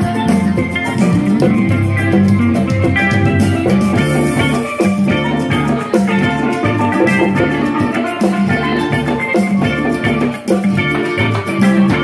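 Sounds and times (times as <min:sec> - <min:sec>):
drum kit beat: 0:00.0 - 0:12.0
electric guitar: 0:00.0 - 0:12.0
steel pan melody: 0:00.0 - 0:12.0.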